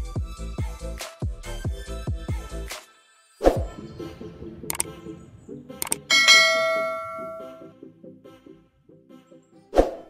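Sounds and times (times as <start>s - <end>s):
soft rhythmic background music: 0.0s - 10.0s
mouse click: 5.8s - 6.1s
notification bell ding: 6.0s - 7.7s.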